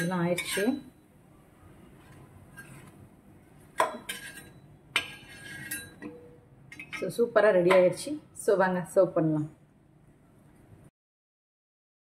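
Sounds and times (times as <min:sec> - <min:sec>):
steel spatula scraping iron pan: 0:00.0 - 0:01.0, 0:02.0 - 0:03.0, 0:03.7 - 0:07.9.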